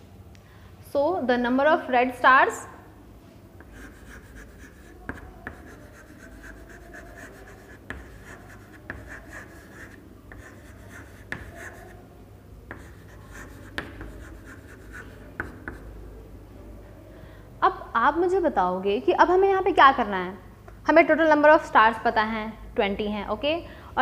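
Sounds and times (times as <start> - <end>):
chalk scratching on chalkboard: 3.6 - 12.0, 12.7 - 15.9
chalk tapping on board: 3.6 - 12.0, 12.7 - 15.9.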